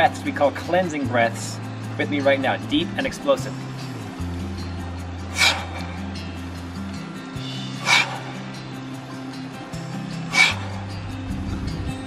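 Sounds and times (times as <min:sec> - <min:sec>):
background music: 0:00.0 - 0:12.0
man exhaling forcefully: 0:05.3 - 0:06.0, 0:07.8 - 0:08.6, 0:10.3 - 0:11.0.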